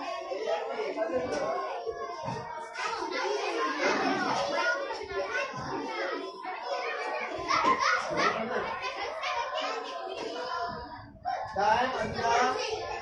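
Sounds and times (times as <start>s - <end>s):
children chattering: 0.0s - 13.0s.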